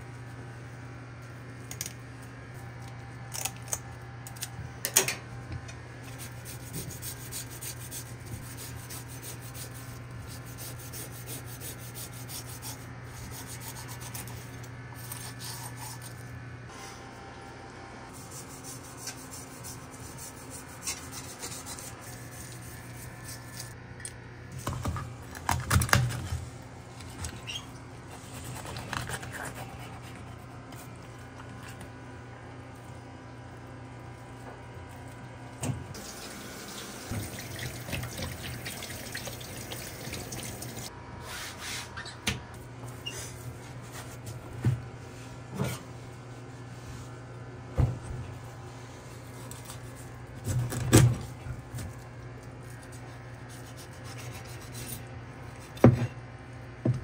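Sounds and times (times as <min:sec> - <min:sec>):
steady low hum: 0:00.0 - 0:57.0
knife scraping fish scales: 0:06.2 - 0:16.3.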